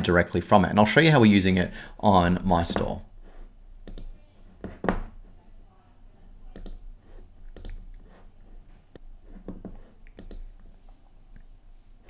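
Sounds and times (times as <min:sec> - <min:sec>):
computer mouse clicking: 0:03.8 - 0:04.2, 0:06.5 - 0:06.9, 0:07.5 - 0:08.1, 0:08.9 - 0:10.7.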